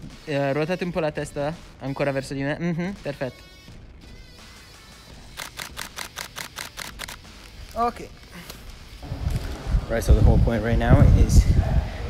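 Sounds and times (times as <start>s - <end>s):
camera shutter burst clicks: 5.3s - 7.6s.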